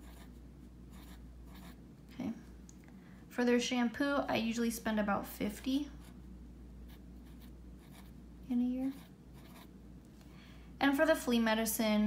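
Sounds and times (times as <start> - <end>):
pen scratching on paper: 0.0 - 1.8, 8.9 - 9.7
woman speaking: 3.3 - 6.1, 8.4 - 9.1, 10.8 - 12.0.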